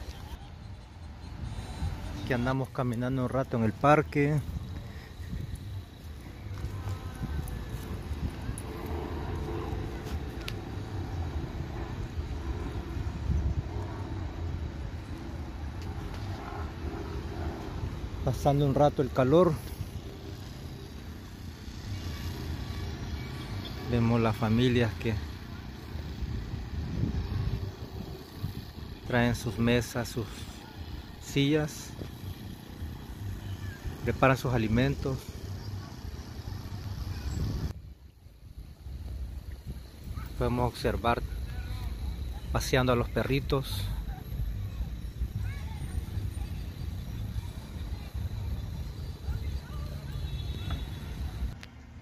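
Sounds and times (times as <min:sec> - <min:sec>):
outdoor low rumble: 0:03.5 - 0:18.7.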